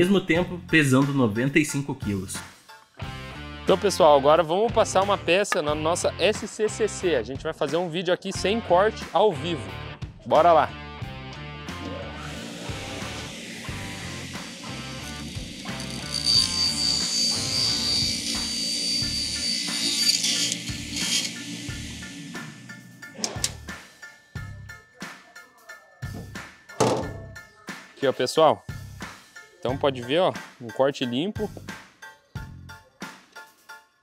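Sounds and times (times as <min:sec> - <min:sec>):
table saw cutting wood: 0:12.0 - 0:22.9
knocks: 0:26.8 - 0:27.3.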